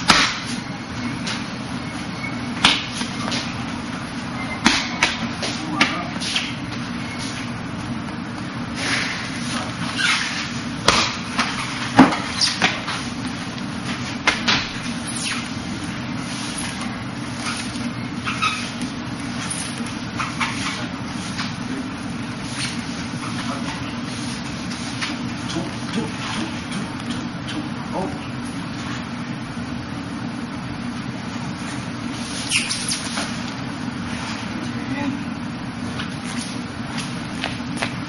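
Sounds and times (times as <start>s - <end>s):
low background hum: 0.0s - 38.0s.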